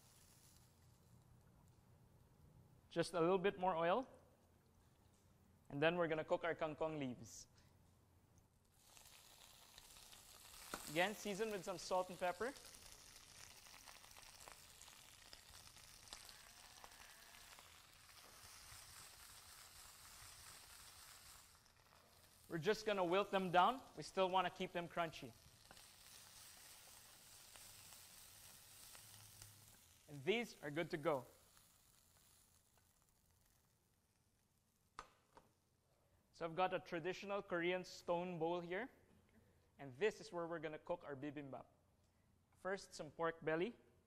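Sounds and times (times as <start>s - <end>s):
leaves sizzling in hot oil: 0.0s - 1.2s, 8.7s - 34.8s.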